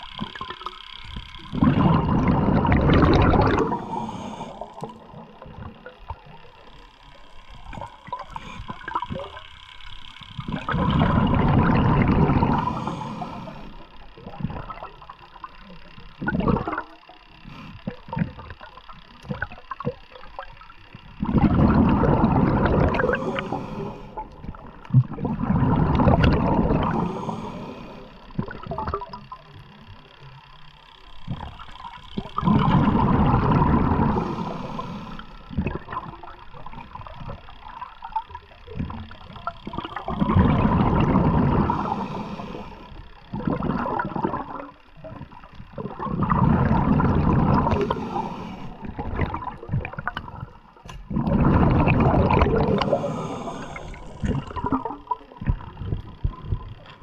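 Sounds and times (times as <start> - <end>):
underwater rushing and gurgling water: 0.0 - 57.0.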